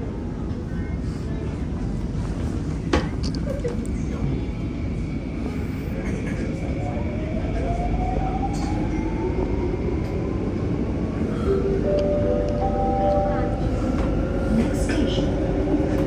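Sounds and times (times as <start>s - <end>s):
train running rumble: 0.0s - 16.0s.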